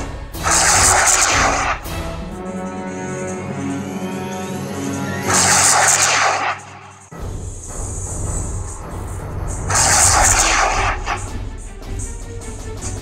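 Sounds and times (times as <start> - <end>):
game music: 0.0 - 13.0
rushing blast effects: 0.4 - 2.0, 5.2 - 11.3.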